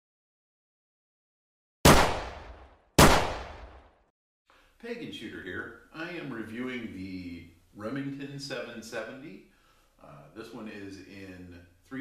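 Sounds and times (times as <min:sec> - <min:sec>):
gunshots: 0:01.8 - 0:03.9.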